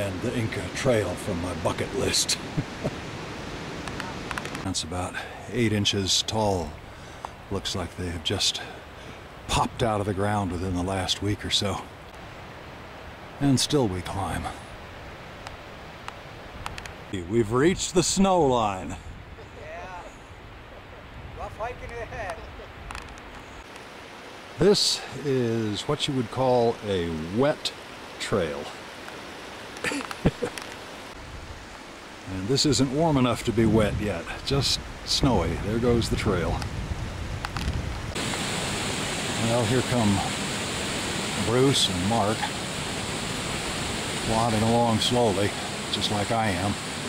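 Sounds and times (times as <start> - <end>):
open-air background hiss: 0.0 - 47.0
faint clicks: 15.4 - 17.0
wind buffeting microphone: 33.0 - 39.0.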